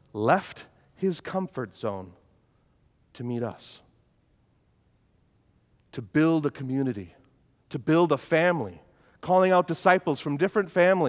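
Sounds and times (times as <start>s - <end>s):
man speaking: 0.0s - 2.2s, 3.1s - 3.9s, 5.9s - 11.0s.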